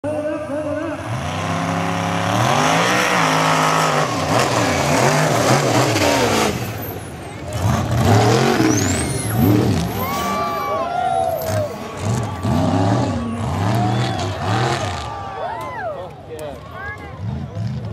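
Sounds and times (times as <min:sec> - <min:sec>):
diesel truck engine revving hard: 0:00.9 - 0:15.4.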